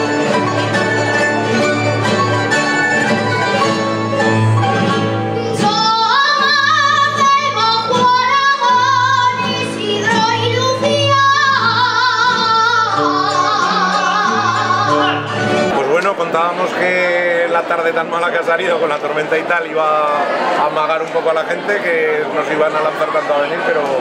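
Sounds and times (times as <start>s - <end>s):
plucked string ensemble: 0.0s - 24.0s
woman singing with vibrato: 5.2s - 15.6s.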